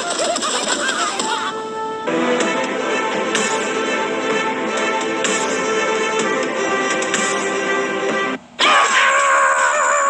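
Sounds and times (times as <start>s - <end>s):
music: 0.0s - 8.4s
cartoon character high-pitched scream: 8.6s - 10.0s.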